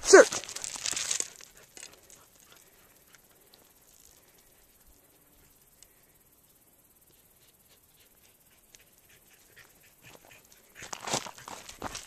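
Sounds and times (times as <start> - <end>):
dog footsteps on gravel: 0.0 - 4.4, 10.1 - 12.0.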